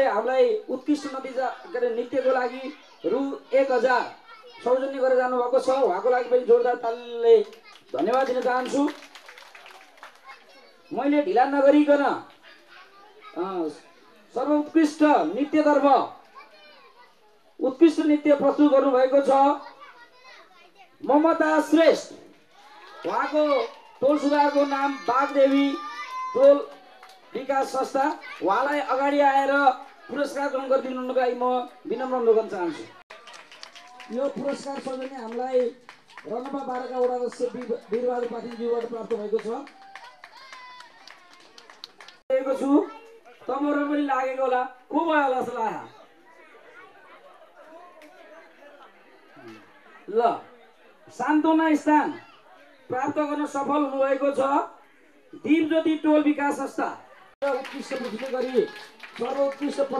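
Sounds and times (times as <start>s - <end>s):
man speaking into microphone: 0.0s - 9.0s, 13.4s - 16.2s, 17.6s - 19.6s, 21.0s - 22.3s, 23.0s - 33.0s, 34.1s - 39.7s, 42.3s - 46.0s, 52.9s - 59.9s
background chatter of people: 0.0s - 59.9s.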